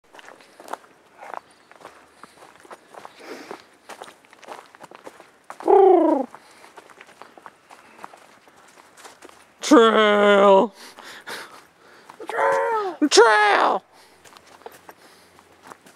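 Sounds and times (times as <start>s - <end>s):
footsteps on dirt trail: 0.0s - 13.2s, 13.8s - 15.9s.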